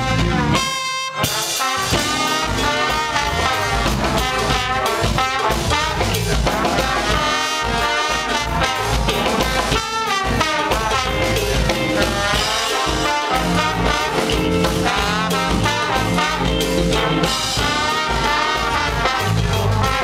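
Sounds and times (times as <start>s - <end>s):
drum kit: 0.0s - 20.0s
trombones playing a riff: 0.0s - 20.0s.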